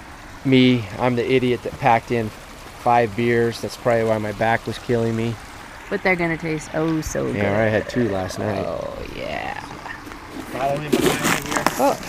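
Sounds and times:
man exclaiming: 0:07.4 - 0:09.0.

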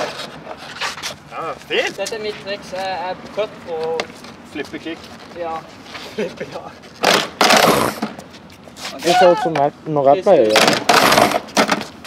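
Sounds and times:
skateboard wheels rolling and scraping: 0:00.0 - 0:01.2
skateboard landing on concrete: 0:07.0 - 0:08.2, 0:10.5 - 0:12.0.

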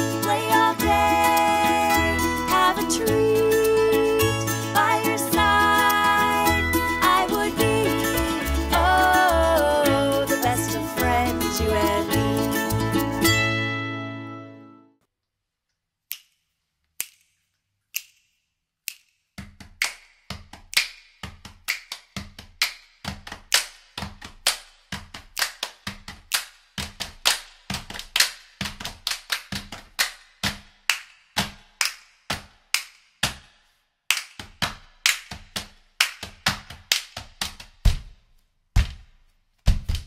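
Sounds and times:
finger snapping: 0:17.0 - 0:19.2
hand clapping: 0:18.0 - 0:38.1.

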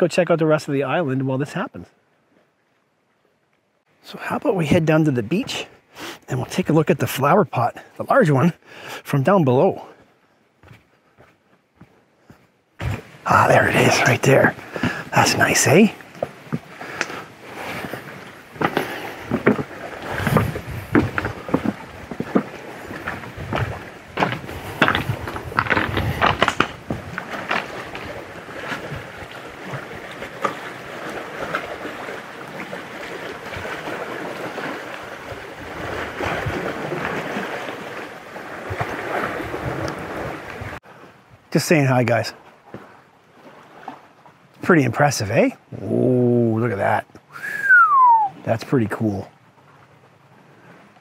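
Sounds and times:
water lapping on rocks: 0:12.3 - 0:41.4, 0:42.4 - 0:44.5
footsteps on rock: 0:18.6 - 0:29.1.

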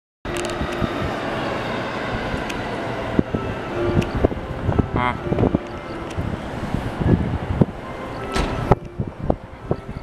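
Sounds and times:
rumble of rail traffic: 0:00.3 - 0:10.0.

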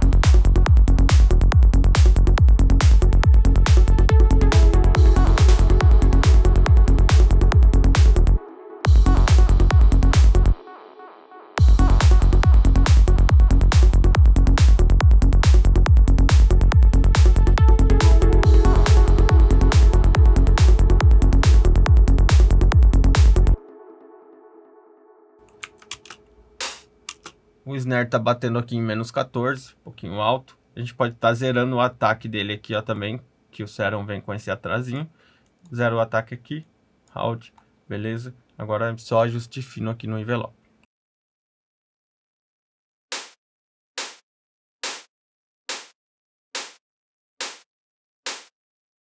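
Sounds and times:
keyboard and mouse clicks: 0:25.4 - 0:27.4
synthesized snare hits: 0:26.6 - 0:27.0, 0:43.1 - 0:43.4.

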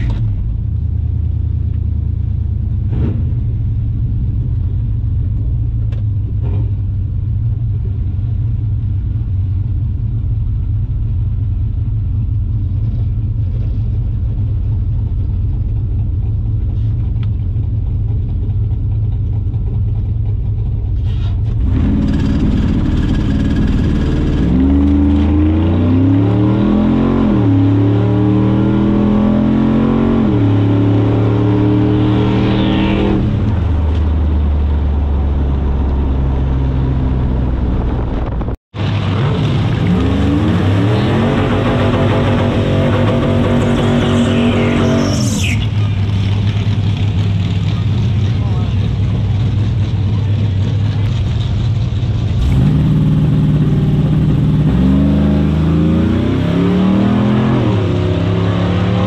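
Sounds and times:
truck accelerating full throttle: 0:00.0 - 0:59.0
engine crackling on launch limiter: 0:21.1 - 0:59.0
truck engine idling: 0:45.7 - 0:52.4.

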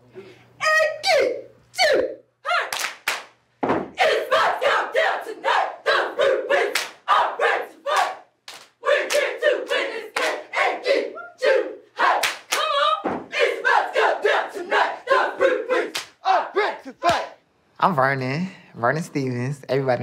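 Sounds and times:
people clapping: 0:02.6 - 0:03.4, 0:06.6 - 0:07.1, 0:07.9 - 0:10.6, 0:12.0 - 0:12.9, 0:15.8 - 0:16.2, 0:17.0 - 0:17.3
stomps: 0:03.6 - 0:04.1, 0:12.2 - 0:13.4
squad shouting chant in unison: 0:04.0 - 0:17.4.

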